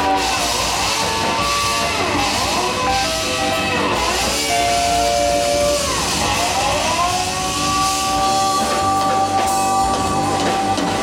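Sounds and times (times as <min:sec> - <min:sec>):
bass: 0:00.0 - 0:11.0
drums: 0:00.0 - 0:11.0
electric guitar sustained notes: 0:00.0 - 0:11.0.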